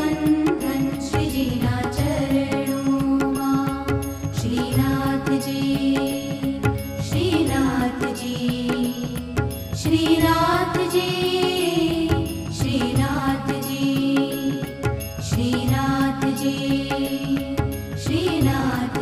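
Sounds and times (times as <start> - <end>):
percussion beat: 0.0 - 19.0.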